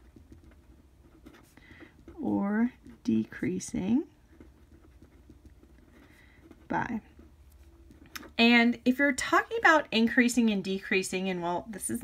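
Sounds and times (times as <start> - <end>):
felt-tip pen scratching paper: 0.0 - 8.4
low steady hum: 0.0 - 12.0.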